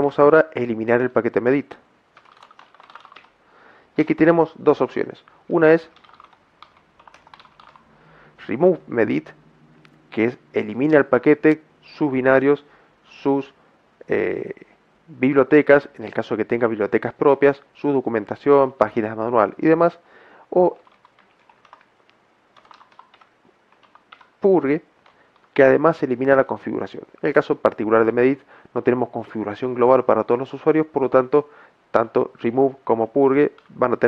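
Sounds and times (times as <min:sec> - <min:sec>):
keyboard typing: 0:02.1 - 0:03.4, 0:05.8 - 0:07.9, 0:20.7 - 0:24.4, 0:25.0 - 0:25.7.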